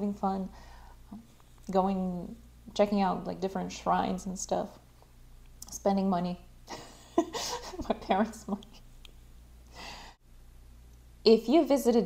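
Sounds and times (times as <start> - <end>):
faint low hum: 0.0 - 12.0
woman's breathy exhale: 9.7 - 10.2.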